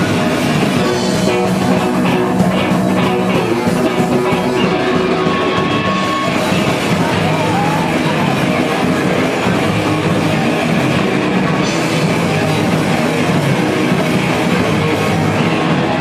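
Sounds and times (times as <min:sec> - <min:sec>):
ska-punk band playing live: 0:00.0 - 0:16.0.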